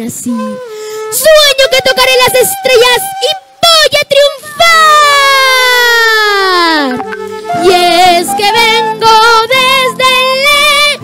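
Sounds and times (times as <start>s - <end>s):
high voice singing with vibrato: 0.0s - 11.0s
soft background music: 6.5s - 11.0s.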